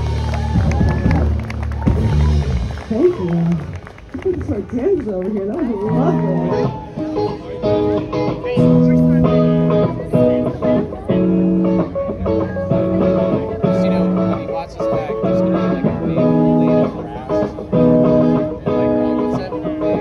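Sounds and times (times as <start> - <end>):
live rock band playing: 0.0 - 3.4, 5.8 - 20.0.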